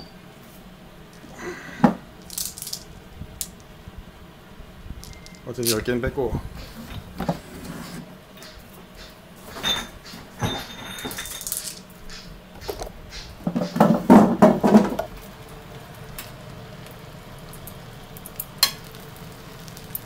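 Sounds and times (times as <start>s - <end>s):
low steady hum: 0.0s - 20.0s
pots and utensils clattering: 6.6s - 15.1s.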